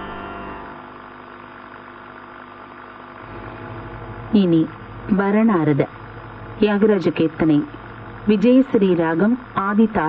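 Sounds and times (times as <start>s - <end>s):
ensemble music notes: 0.0s - 1.0s
steady electrical hum: 0.0s - 10.0s.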